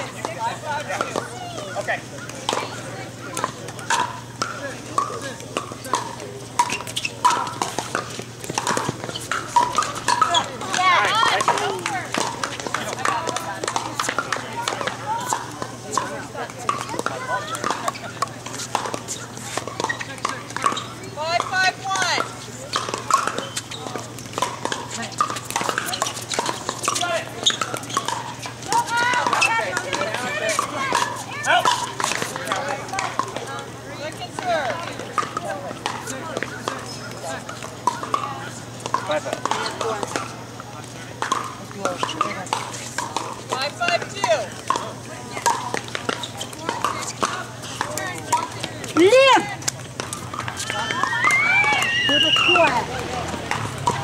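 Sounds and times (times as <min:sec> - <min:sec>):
paddles hitting plastic balls: 0:00.0 - 0:54.0
people's voices: 0:00.0 - 0:54.0.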